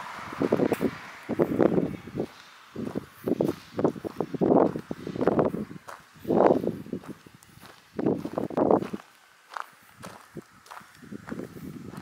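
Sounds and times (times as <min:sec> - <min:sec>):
footsteps crunching on gravel: 0:01.4 - 0:12.0
faint scuffs on gravel: 0:02.2 - 0:12.0.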